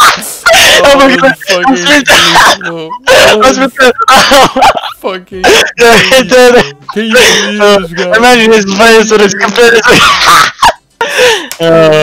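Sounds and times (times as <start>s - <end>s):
person shouting excitedly: 0.0s - 4.2s.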